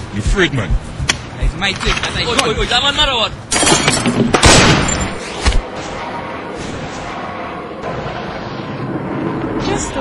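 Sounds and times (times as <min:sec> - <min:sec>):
gunshots echoing: 0:03.6 - 0:05.8.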